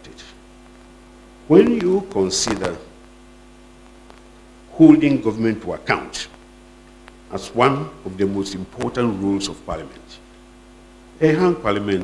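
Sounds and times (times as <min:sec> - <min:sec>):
electrical mains hum: 0:00.0 - 0:12.0
man's voice: 0:01.5 - 0:02.9, 0:04.7 - 0:06.4, 0:07.3 - 0:10.2, 0:11.2 - 0:12.0.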